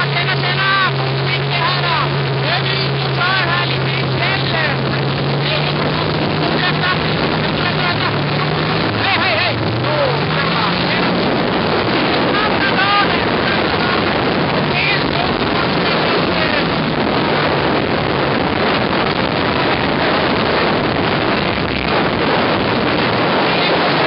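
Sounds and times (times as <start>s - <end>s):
snowmobile engines running: 0.0s - 24.0s
wind on microphone: 0.0s - 24.0s.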